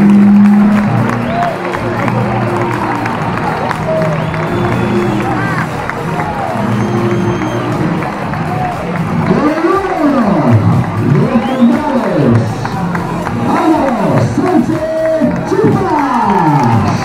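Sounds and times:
crowd shouting and cheering: 0:00.0 - 0:17.0
loud music: 0:00.0 - 0:17.0.

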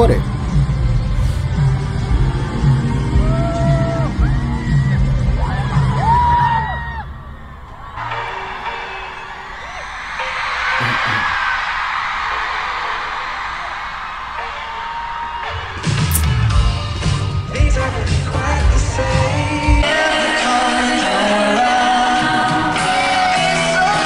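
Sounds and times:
singer holding long notes: 0:01.5 - 0:11.5
crowd screaming and cheering: 0:01.7 - 0:19.6
band playing: 0:10.2 - 0:11.4.

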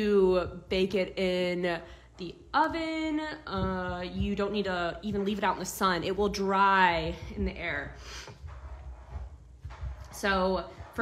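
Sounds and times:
hands kneading soft clay: 0:03.4 - 0:11.0.

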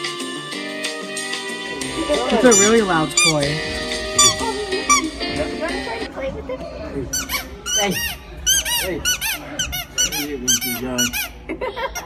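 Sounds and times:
squeaky dog toy squeaking: 0:02.4 - 0:03.6, 0:04.2 - 0:05.2, 0:07.1 - 0:11.4.

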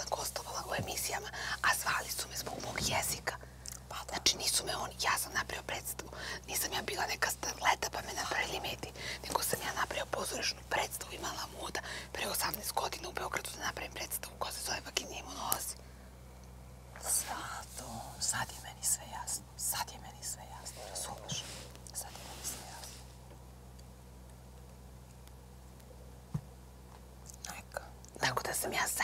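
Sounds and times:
women whispering: 0:00.0 - 0:15.8, 0:17.0 - 0:22.9
steady low hum: 0:00.0 - 0:29.0.

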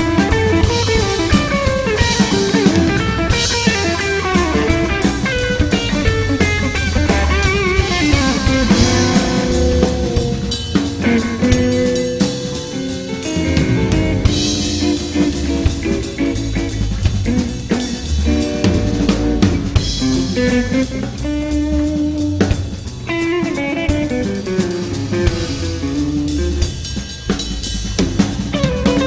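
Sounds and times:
electric guitar lines: 0:00.0 - 0:27.3
busy electric bass line: 0:00.0 - 0:29.0
drumming with cymbals: 0:00.0 - 0:29.0.

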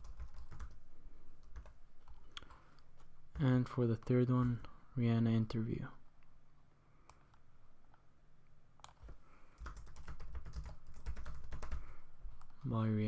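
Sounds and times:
computer keyboard typing: 0:00.0 - 0:00.8, 0:01.4 - 0:04.7, 0:08.8 - 0:12.6.

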